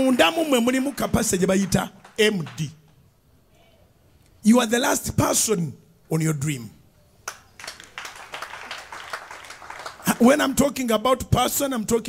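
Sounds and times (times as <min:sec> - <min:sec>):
audience clapping: 0:00.0 - 0:03.0, 0:07.2 - 0:10.6.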